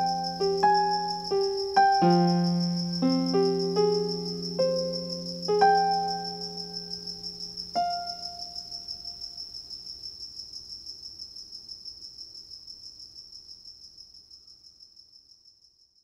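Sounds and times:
cricket chirping: 0.0 - 16.0.

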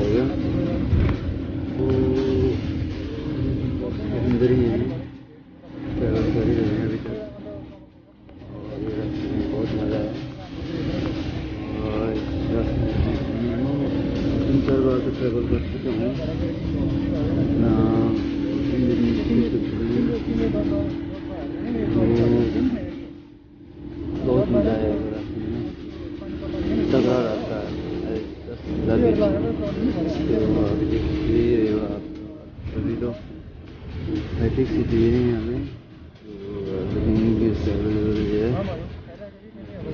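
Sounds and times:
background voices: 0.0 - 39.9
vehicle engine and road rumble: 0.0 - 39.9.

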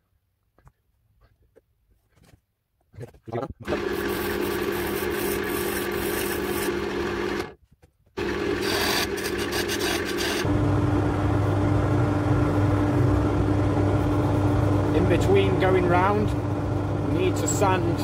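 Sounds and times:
tool working spinning wood: 3.6 - 7.6, 8.2 - 10.5
wood lathe humming: 3.7 - 7.6, 8.2 - 18.0.

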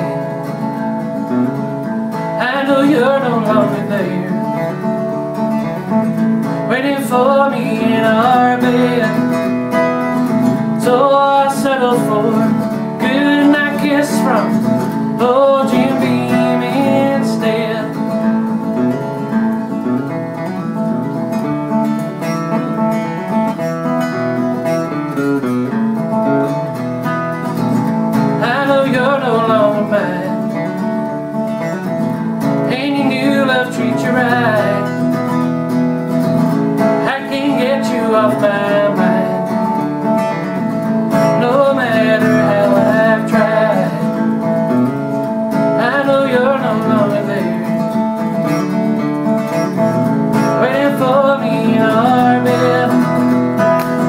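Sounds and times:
acoustic guitar: 0.0 - 54.0
man singing: 2.3 - 4.9, 6.6 - 18.6, 28.3 - 30.8, 32.6 - 35.4, 36.8 - 44.7, 45.5 - 48.8, 49.6 - 54.0.

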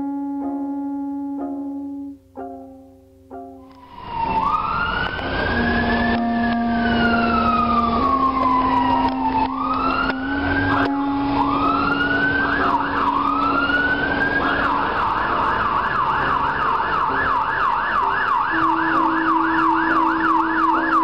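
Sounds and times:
low steady tone: 0.0 - 4.0
emergency siren wailing and yelping: 3.7 - 21.0.

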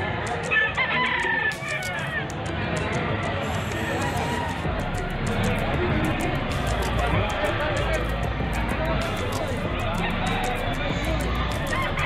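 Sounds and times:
rooster crowing: 0.5 - 2.1.

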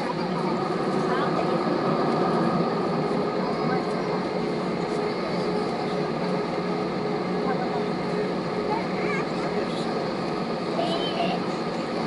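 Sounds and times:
faint passenger voices: 0.0 - 12.0
jet engine hum: 0.0 - 12.0.

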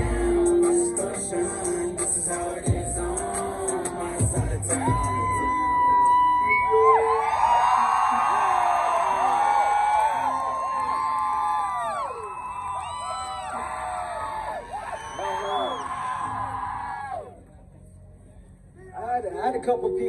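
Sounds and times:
crowd cheering and whooping: 4.4 - 17.5.

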